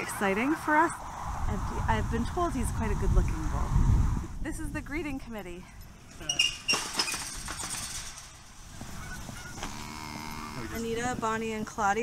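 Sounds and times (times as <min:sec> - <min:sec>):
gate rattling: 0:06.1 - 0:09.8
metal gate clanking: 0:06.1 - 0:09.8.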